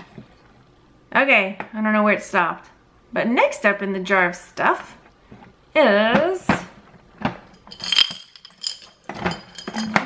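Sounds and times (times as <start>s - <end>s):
metal trinkets clinking on glass jar: 7.5s - 10.0s.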